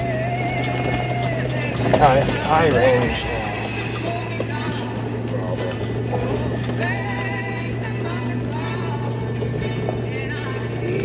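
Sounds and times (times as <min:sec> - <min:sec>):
car engine drone from inside: 0:00.0 - 0:11.0
music playing: 0:00.0 - 0:11.0.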